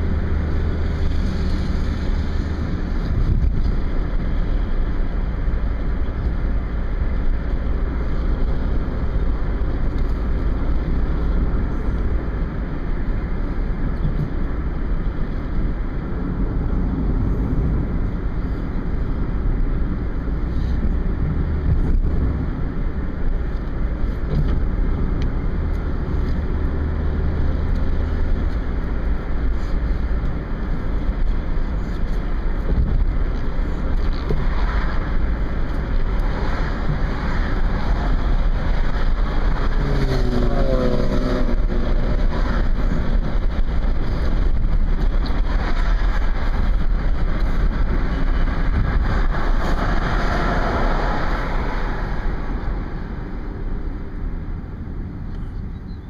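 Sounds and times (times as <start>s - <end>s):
car cabin road noise: 0.0s - 56.0s.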